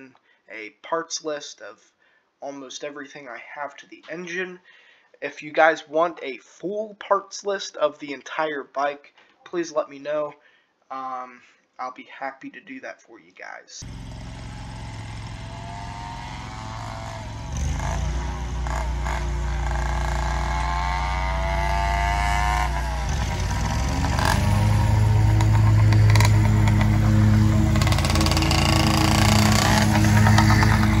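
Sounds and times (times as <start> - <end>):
two-stroke engine revving: 13.8 - 31.0.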